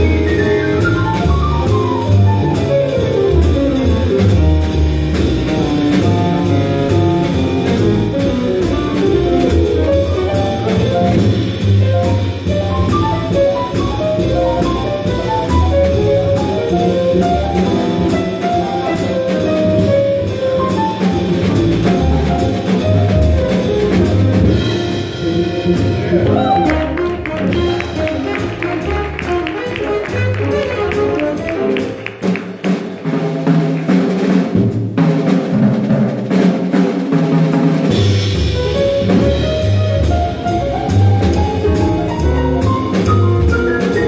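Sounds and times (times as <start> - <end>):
drum kit cymbal beat: 0.0 - 26.6, 27.4 - 44.0
upright bass: 0.0 - 32.4, 37.9 - 44.0
jazz melodic line: 0.0 - 44.0.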